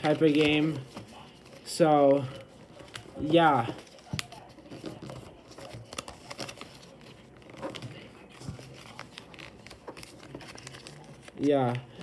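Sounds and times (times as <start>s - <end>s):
paper being folded and crinkling: 0.0s - 12.0s.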